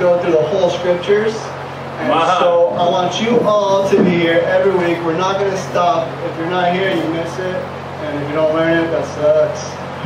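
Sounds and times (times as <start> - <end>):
man talking over a microphone: 0.0 - 9.8
steady low hum: 0.0 - 10.0.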